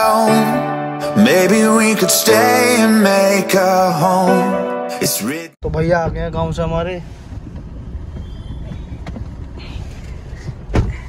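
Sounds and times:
car engine and road rumble: 5.6 - 11.0.

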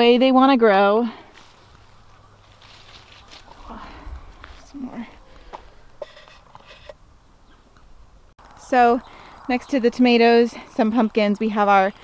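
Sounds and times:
plant foliage rustling: 1.2 - 6.9.

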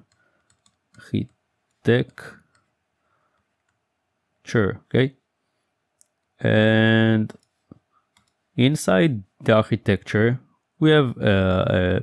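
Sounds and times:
man speaking: 1.0 - 2.4, 4.4 - 5.2, 6.4 - 7.4, 8.6 - 12.0.

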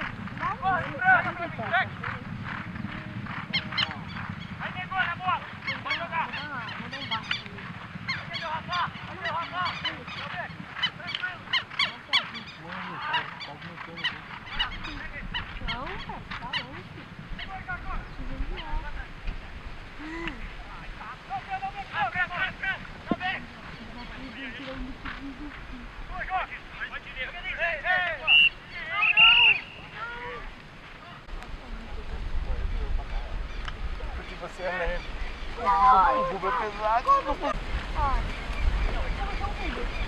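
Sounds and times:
birds honking: 0.0 - 19.1, 19.7 - 31.3, 33.4 - 40.0
hooves galloping on turf: 0.0 - 40.0.

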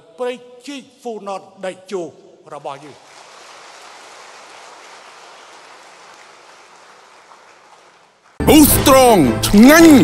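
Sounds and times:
audience applauding: 3.0 - 8.6.

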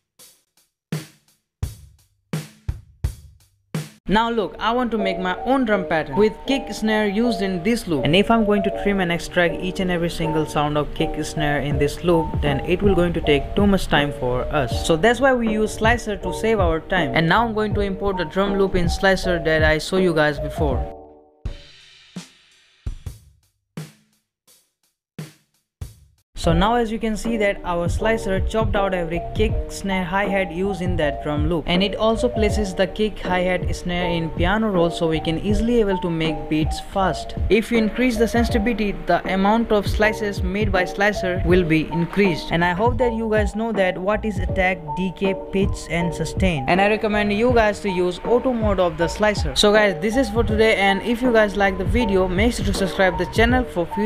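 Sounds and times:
hip-hop drum loop: 0.9 - 20.9, 25.2 - 54.0.

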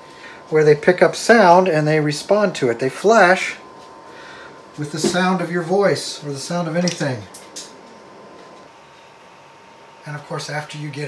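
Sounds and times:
computer cooling fans hissing: 0.0 - 11.0.

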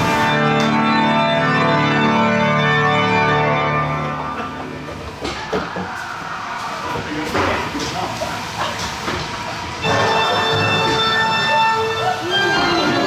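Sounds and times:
faint voices: 4.7 - 13.0.

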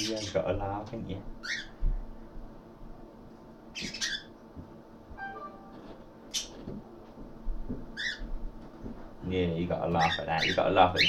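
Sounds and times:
bird squawking: 10.0 - 11.0.

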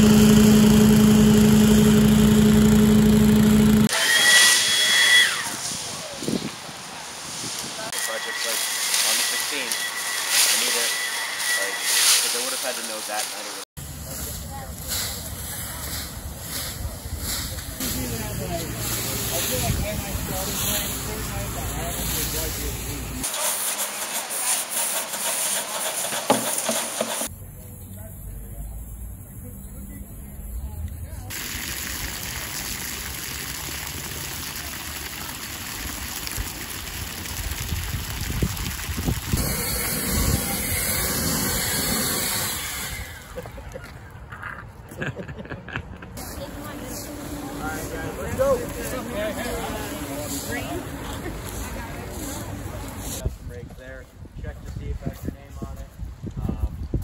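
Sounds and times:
rakes scratching through dry leaves: 7.1 - 27.2, 48.5 - 53.3
wind rumble on microphone: 37.4 - 40.5, 53.2 - 57.0.

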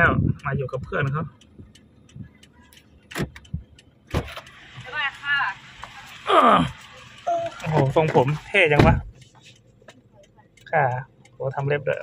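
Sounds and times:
car door clunks: 3.1 - 4.5, 7.7 - 9.1.

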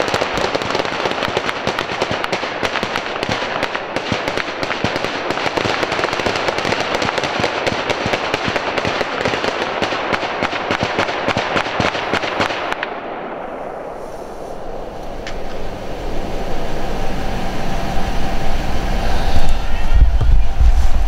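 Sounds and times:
rapid gunfire echoing: 0.0 - 13.6.

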